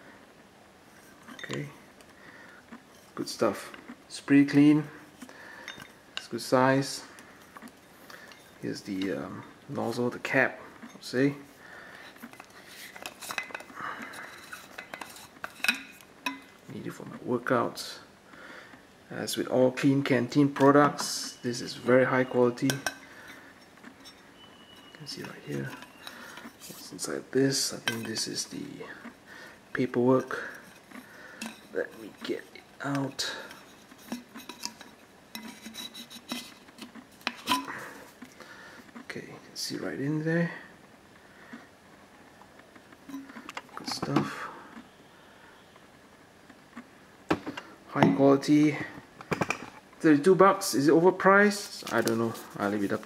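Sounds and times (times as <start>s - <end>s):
taps and clinks against steel: 5.6s - 6.0s, 14.7s - 16.5s
cap threads scraping on metal: 12.2s - 16.5s, 20.5s - 28.7s, 30.1s - 38.2s.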